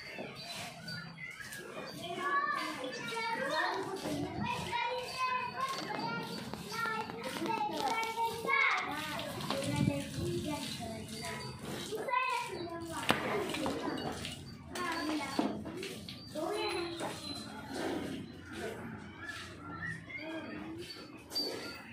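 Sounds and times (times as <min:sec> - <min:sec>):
children talking and calling out: 0:00.0 - 0:21.9.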